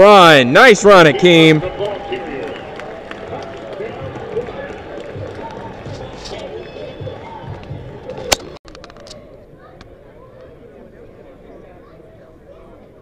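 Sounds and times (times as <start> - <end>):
crowd murmur: 0.0 - 13.0
spectators chattering: 0.0 - 13.0.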